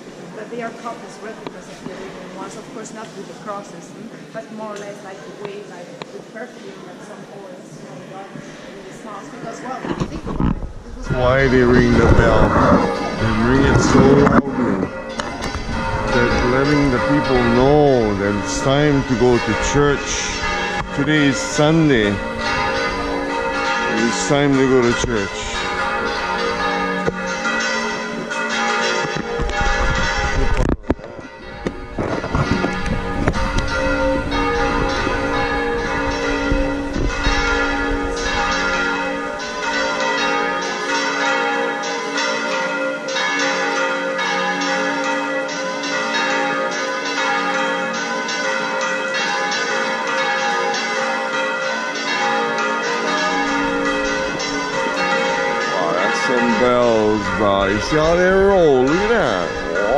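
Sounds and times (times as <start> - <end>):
church bells ringing: 0.0 - 5.7, 8.0 - 59.9.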